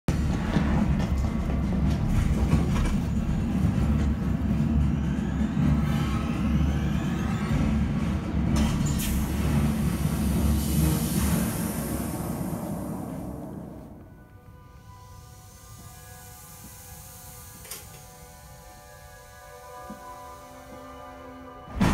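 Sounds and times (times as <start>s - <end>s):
high hiss: 14.7s - 21.4s.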